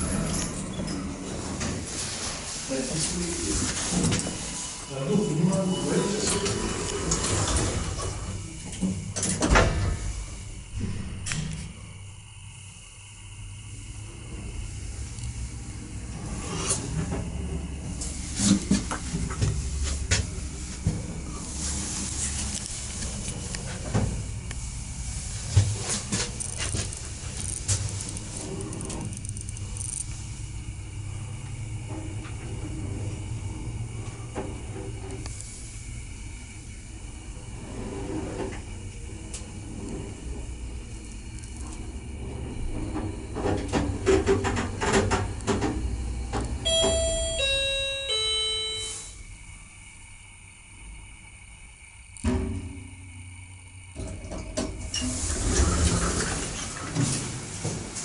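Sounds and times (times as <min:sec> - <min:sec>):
elevator hum and rumble: 0:00.0 - 0:58.0
elevator door clunk: 0:42.3 - 0:49.1
three-note elevator chime: 0:46.6 - 0:49.1.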